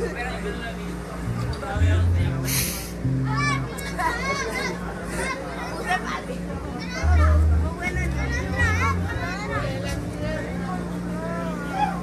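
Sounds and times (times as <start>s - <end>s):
crowd chatter and shouts: 0.0s - 12.0s
electric bass guitar notes: 1.3s - 3.8s, 7.0s - 10.6s
short hissing burst: 2.4s - 3.0s
children's voices: 3.1s - 12.0s.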